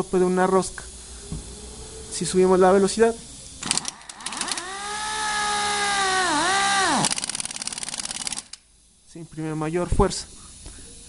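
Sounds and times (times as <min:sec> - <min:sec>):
air hiss: 0:00.0 - 0:11.0
air motor whining: 0:00.2 - 0:08.6.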